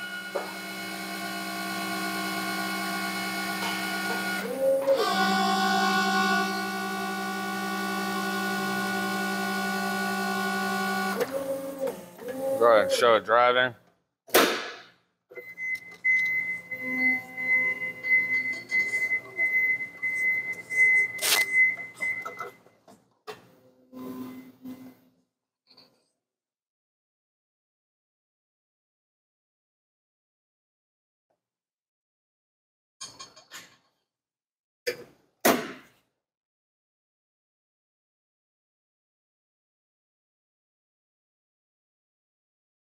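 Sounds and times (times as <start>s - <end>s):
electric forklift motor whine: 0.0s - 12.9s
sharp clunk: 14.3s - 15.0s, 34.9s - 35.9s.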